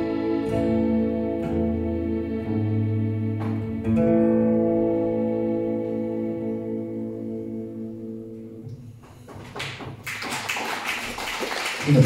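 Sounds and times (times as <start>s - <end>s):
accordion chord: 0.0s - 8.7s
audience applause: 9.4s - 12.0s.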